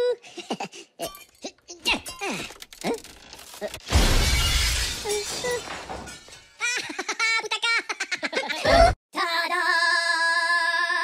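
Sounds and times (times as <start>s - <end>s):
glass shattering: 2.1s - 6.6s.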